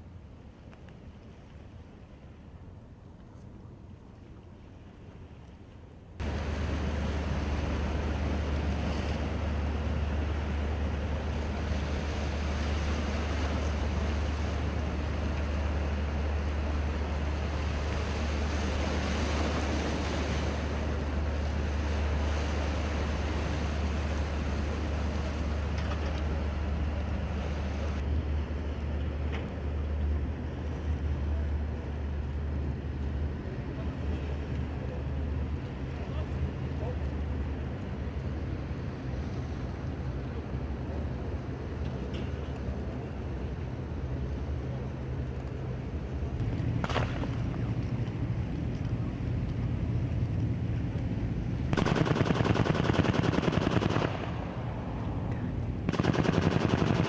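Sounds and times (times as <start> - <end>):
boat engines droning: 0.0 - 57.0
wind: 0.0 - 57.0
water washing: 6.2 - 28.0.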